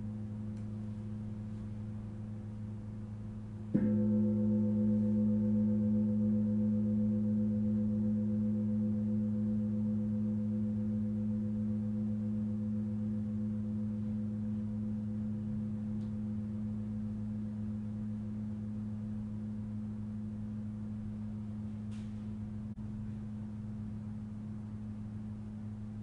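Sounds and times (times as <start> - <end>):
singing bowls humming: 0.0 - 26.0.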